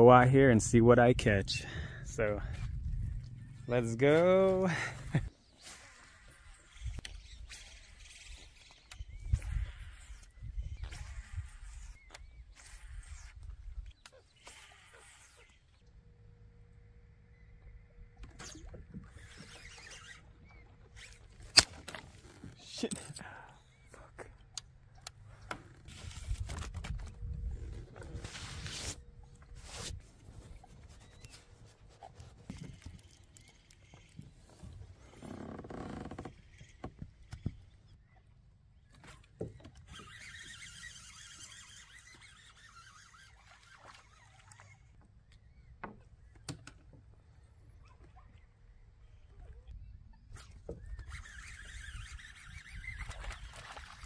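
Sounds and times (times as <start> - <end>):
cloth rubbing on microphone: 28.0 - 32.5.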